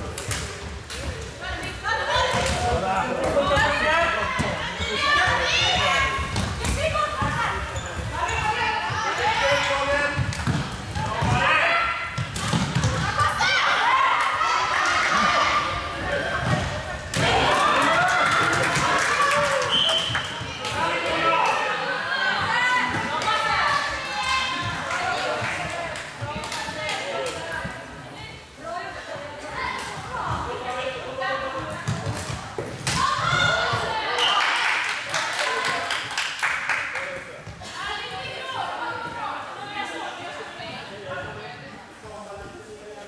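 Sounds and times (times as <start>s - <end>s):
players shouting in sports hall: 1.6s - 10.2s, 11.0s - 27.4s, 32.8s - 36.0s.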